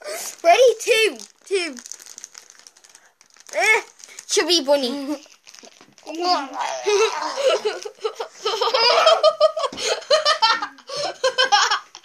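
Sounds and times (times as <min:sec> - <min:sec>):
crinkling and rustling: 0:00.0 - 0:08.7
child vocalizing: 0:03.5 - 0:04.0, 0:06.0 - 0:07.9.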